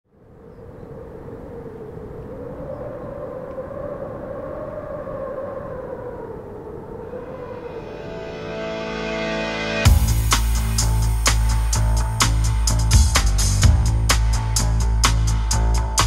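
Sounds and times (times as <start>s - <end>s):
droning rush with wavering pitch: 0.5s - 16.0s.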